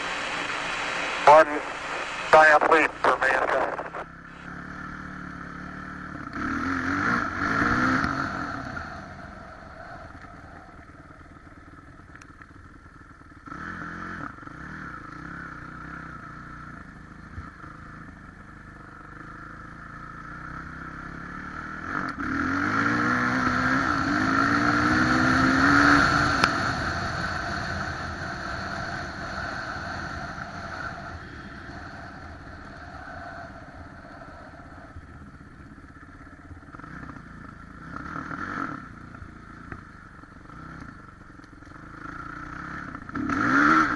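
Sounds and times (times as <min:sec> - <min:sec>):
dirt bike engine revving: 0:04.6 - 0:09.0, 0:20.6 - 0:32.2, 0:41.9 - 0:43.9.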